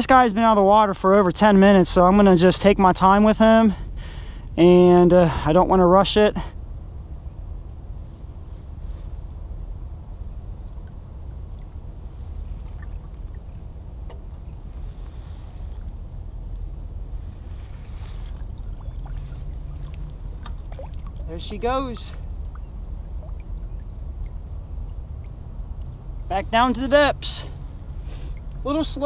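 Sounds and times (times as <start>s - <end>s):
low wind rumble: 0.0s - 29.0s
faint splashes: 10.6s - 16.0s, 17.4s - 26.3s
water lapping against boat: 10.7s - 16.1s, 17.2s - 26.3s.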